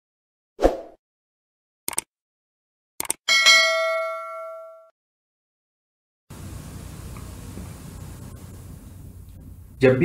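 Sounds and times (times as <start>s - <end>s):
notification bell ding: 3.3s - 4.9s.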